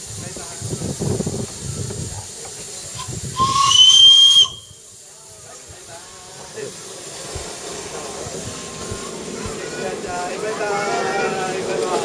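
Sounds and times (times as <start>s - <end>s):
steam hiss: 0.0s - 12.0s
steam locomotive whistle blast: 3.0s - 4.9s.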